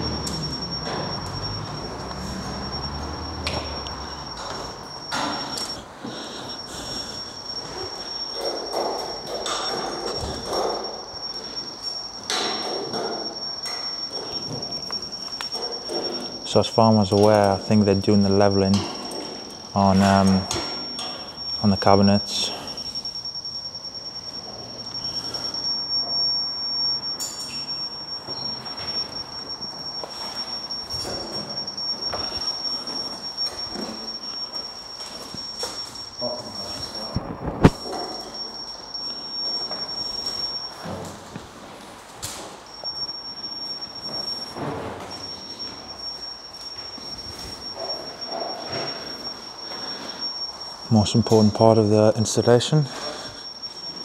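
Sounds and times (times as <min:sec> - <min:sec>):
steady high-pitched whine: 0:00.0 - 0:54.0.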